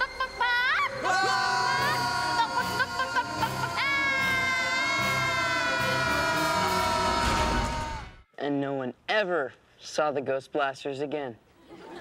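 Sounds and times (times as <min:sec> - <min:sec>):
boys screaming together: 0:00.6 - 0:08.2.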